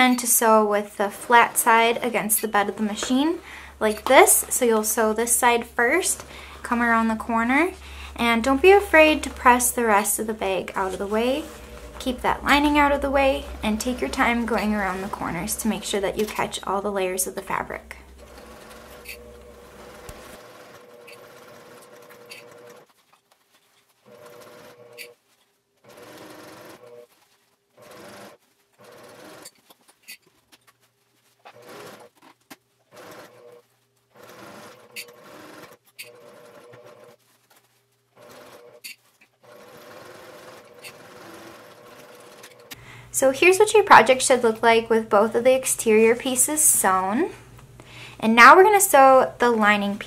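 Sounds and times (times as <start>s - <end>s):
sewing machine stitching: 1.0s - 23.1s, 24.0s - 25.2s, 25.8s - 29.8s, 31.4s - 42.8s.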